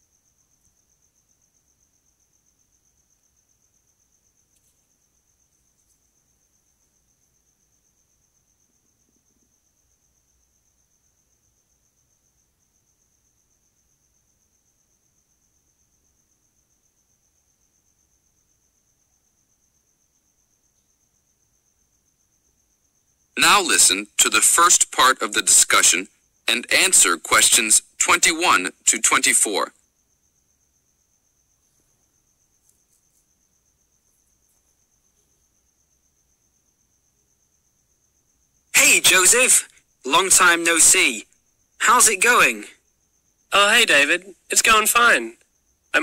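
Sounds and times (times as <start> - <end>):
faint high-pitched tone: 41.8 - 42.7, 43.5 - 45.4.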